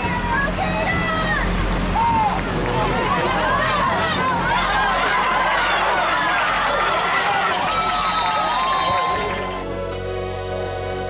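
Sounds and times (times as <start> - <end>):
crowd yelling and cheering: 0.0 - 11.0.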